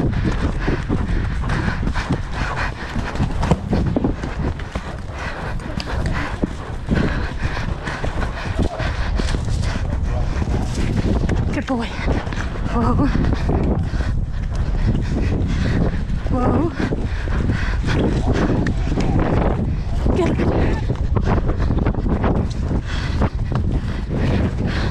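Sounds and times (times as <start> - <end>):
horse galloping on turf: 0.0 - 24.9
wind buffeting microphone: 0.0 - 24.9.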